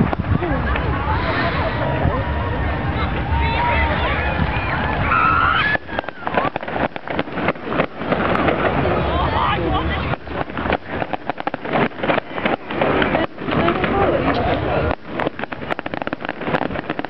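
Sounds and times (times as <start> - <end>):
fireworks crackling and popping: 0.0 - 1.9, 2.9 - 17.0
crowd talking: 0.0 - 17.0.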